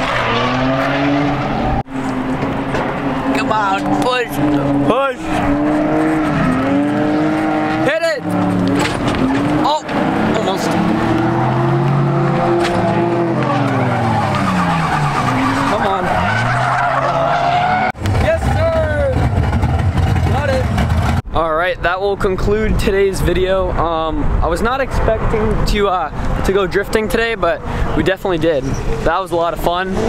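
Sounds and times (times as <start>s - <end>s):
car engine revving: 0.0s - 21.3s
tyre squeal: 12.4s - 18.7s, 28.6s - 29.0s.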